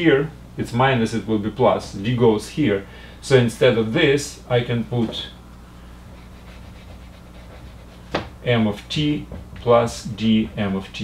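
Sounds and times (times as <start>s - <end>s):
low electrical hum: 0.0s - 11.0s
eraser wiping whiteboard: 6.1s - 8.3s.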